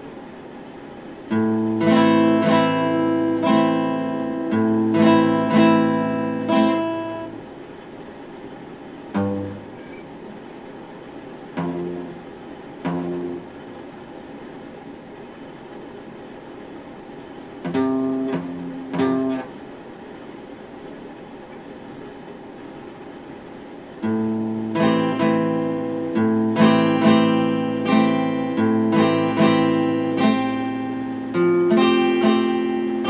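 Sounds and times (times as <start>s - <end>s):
acoustic guitar strumming: 1.3s - 7.4s, 9.1s - 10.3s, 11.4s - 13.6s, 17.5s - 19.6s, 24.0s - 33.0s.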